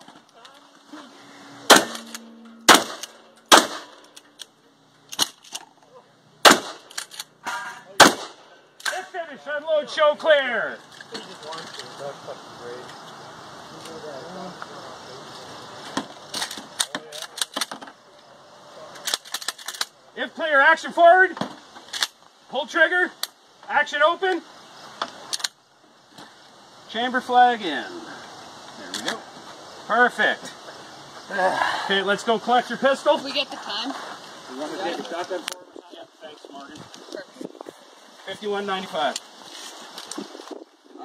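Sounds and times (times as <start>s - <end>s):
shotgun shot: 1.7s - 4.0s, 6.4s - 6.9s, 7.5s - 9.0s.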